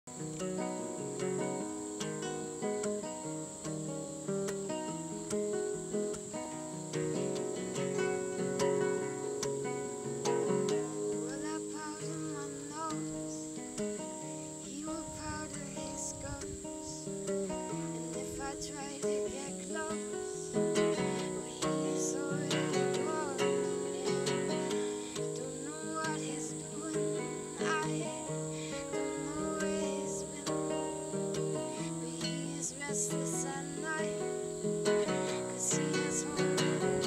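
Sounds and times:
fingerpicked classical guitar: 0.0s - 37.0s
crickets chirring: 0.1s - 37.0s.

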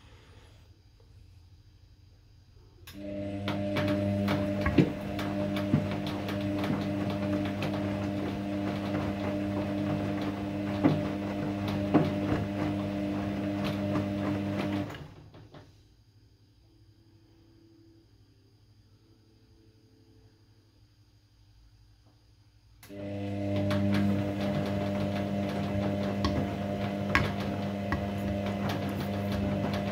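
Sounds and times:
washing machine motor hum: 2.8s - 15.7s, 22.8s - 29.9s.

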